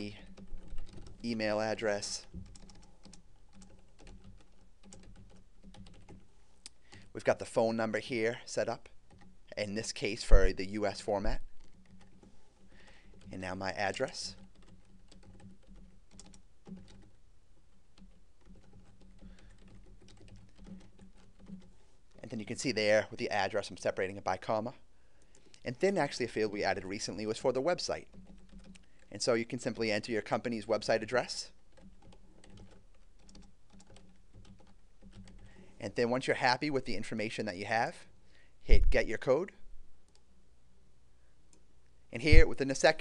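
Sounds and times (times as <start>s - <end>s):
person speaking: 0.0s - 2.8s, 6.6s - 11.6s, 12.6s - 14.5s, 21.4s - 28.2s, 29.0s - 31.6s, 35.4s - 39.8s, 42.1s - 43.0s
computer keyboard typing: 0.0s - 8.1s, 8.7s - 23.0s, 25.2s - 35.8s.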